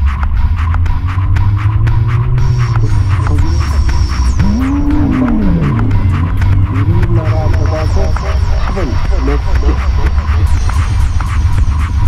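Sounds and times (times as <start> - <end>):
electro track: 0.0 - 12.0
steady bass: 0.0 - 12.0
gliding synth line: 1.1 - 10.3.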